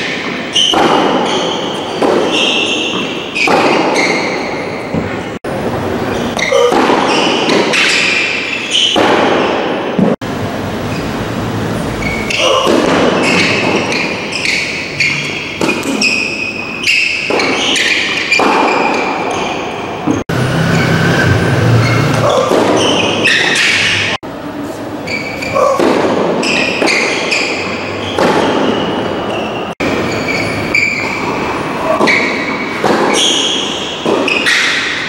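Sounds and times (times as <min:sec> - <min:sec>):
tennis balls bouncing: 0:00.0 - 0:05.2, 0:06.1 - 0:10.2, 0:12.0 - 0:20.3, 0:21.8 - 0:24.0, 0:25.1 - 0:35.0
tennis balls hit by rackets: 0:00.0 - 0:05.2, 0:06.1 - 0:10.2, 0:12.0 - 0:20.3, 0:21.8 - 0:24.2, 0:25.1 - 0:35.0.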